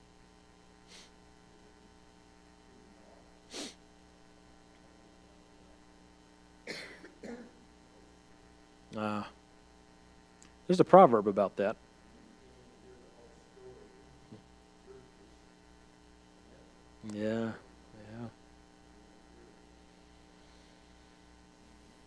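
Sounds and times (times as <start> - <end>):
electrical hum: 0.0 - 22.0
short breathy burst: 0.9 - 1.2, 3.5 - 3.8.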